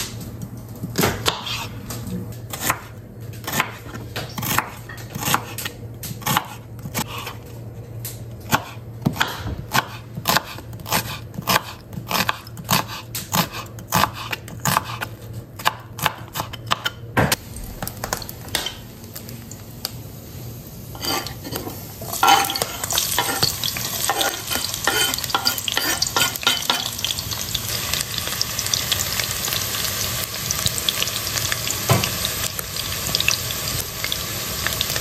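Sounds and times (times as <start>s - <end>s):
knife chopping on wooden board: 8.5s - 17.4s.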